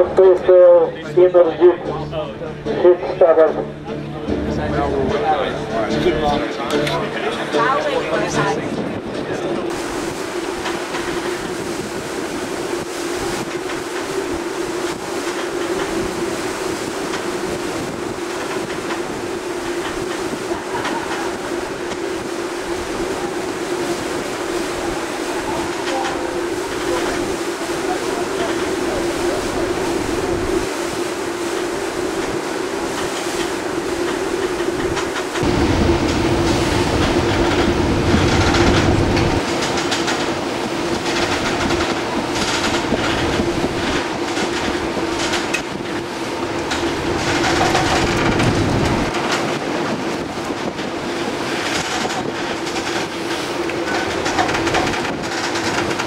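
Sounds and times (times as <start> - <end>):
deep rumble: 0.0 - 50.9
wind and water rushing at bow: 0.0 - 56.0
constant low hum: 9.6 - 49.6.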